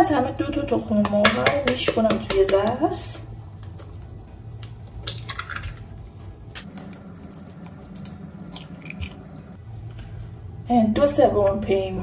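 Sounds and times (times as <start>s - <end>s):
eggshell tapping on bowl: 1.0s - 2.9s
eggs dropping wetly into bowl: 3.5s - 6.0s, 6.6s - 9.5s.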